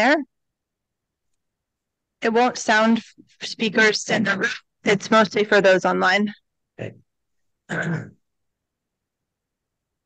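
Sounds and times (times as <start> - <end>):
man clearing throat: 7.7 - 8.2.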